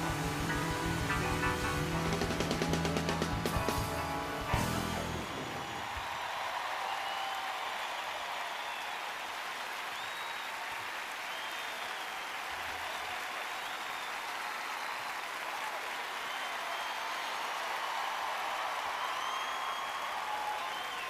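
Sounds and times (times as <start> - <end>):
audience applauding: 0.0 - 21.0
whistles from audience: 5.0 - 21.0.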